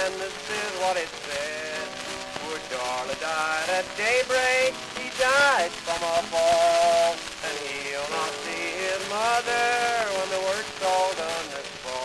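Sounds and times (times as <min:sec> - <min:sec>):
old country record with guitar: 0:00.0 - 0:12.0
record surface hiss and crackle: 0:00.0 - 0:12.0.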